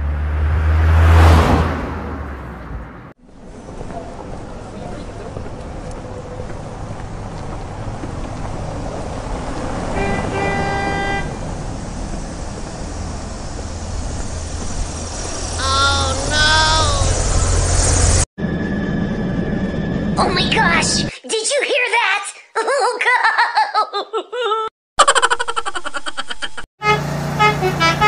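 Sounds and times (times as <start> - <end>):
horn-like toot: 10.0 - 11.4, 26.8 - 28.0.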